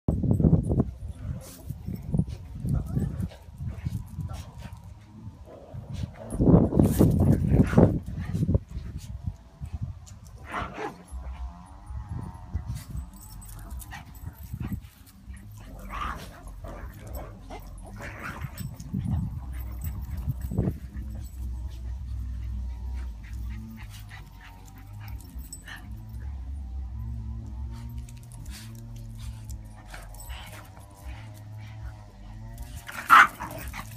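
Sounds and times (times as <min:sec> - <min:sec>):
low rumble: 0:00.1 - 0:33.9.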